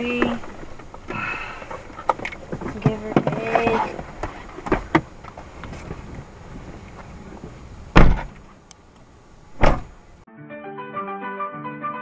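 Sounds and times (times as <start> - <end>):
car doors slamming: 7.9 - 8.4, 9.5 - 10.0.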